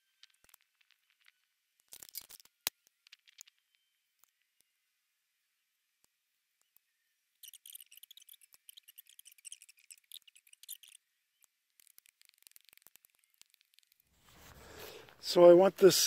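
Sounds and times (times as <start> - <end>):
faint ticks: 6.6 - 15.2
small birds chirping: 6.6 - 15.6
soft rustle: 11.8 - 15.4.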